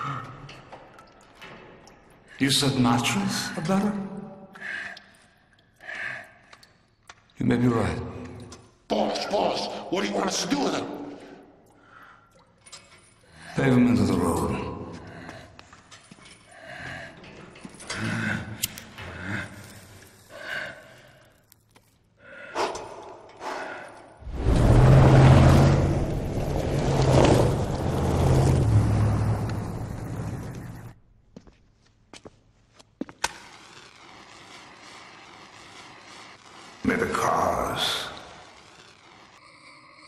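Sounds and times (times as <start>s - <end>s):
engine driving past: 24.2s - 31.0s.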